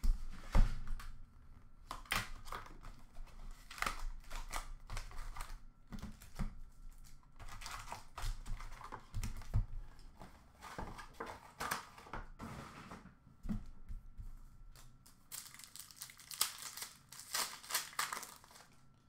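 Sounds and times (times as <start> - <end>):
card packs tapping and rustling: 1.9 - 12.3, 15.3 - 18.8.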